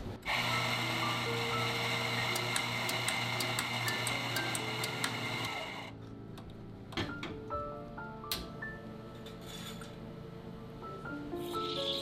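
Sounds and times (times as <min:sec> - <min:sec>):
electric coffee grinder whirring: 0:00.2 - 0:05.9.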